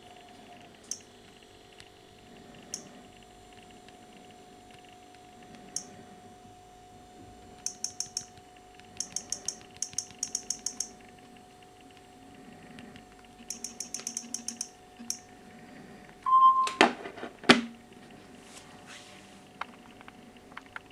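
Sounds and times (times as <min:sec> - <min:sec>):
rapid taps on touchscreen: 0:03.6 - 0:05.9, 0:07.6 - 0:10.9, 0:12.9 - 0:15.2
short beep: 0:16.2 - 0:16.9.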